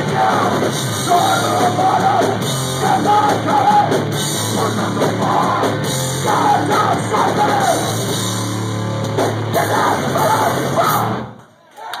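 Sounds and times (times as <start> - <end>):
singer yelling: 0.0 - 8.1, 9.5 - 12.0
hardcore punk band playing live: 0.0 - 11.4.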